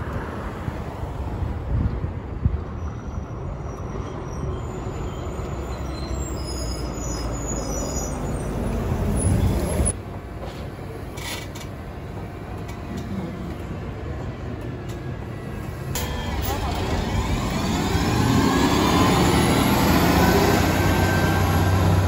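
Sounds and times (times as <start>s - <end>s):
bus engine approaching: 0.0s - 22.0s.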